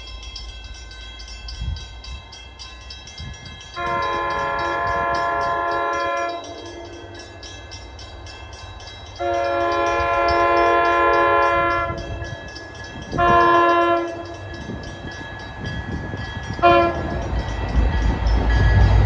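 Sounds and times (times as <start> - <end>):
train air horn blasts: 3.8 - 7.2, 9.2 - 12.5, 13.1 - 14.5, 16.6 - 17.3.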